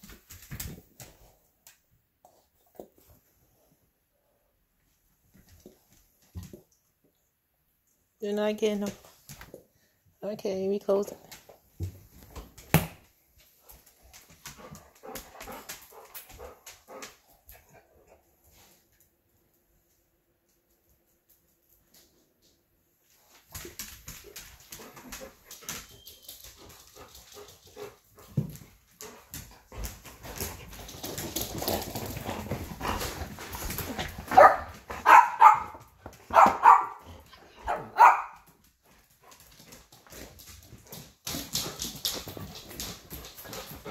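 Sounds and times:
dog barking: 34.3 - 37.0, 37.6 - 38.4.

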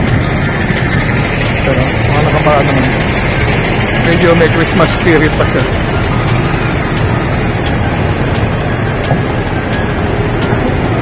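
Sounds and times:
background music: 0.0 - 11.0
traffic rumble: 0.0 - 11.0.

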